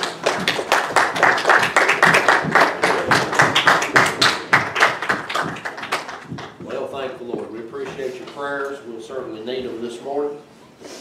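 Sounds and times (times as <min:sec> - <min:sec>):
crowd clapping: 0:00.0 - 0:06.7.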